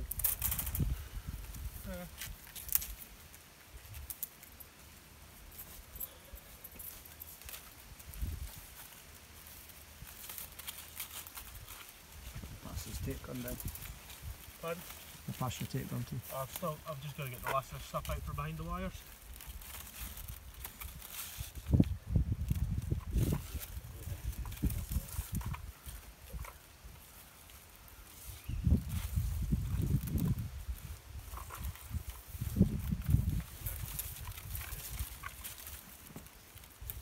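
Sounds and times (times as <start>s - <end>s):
rustling bramble leaves: 0.0s - 37.0s.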